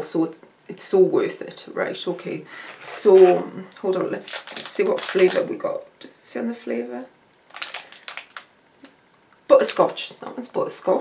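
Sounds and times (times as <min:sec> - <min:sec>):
wrappers rustling and crinkling: 0:04.2 - 0:05.5, 0:07.5 - 0:08.5.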